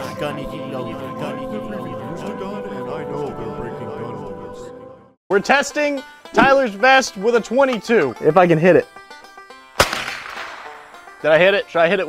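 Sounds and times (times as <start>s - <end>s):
faint background music: 5.3s - 12.0s
rifle gunshot with echo: 9.8s - 10.8s.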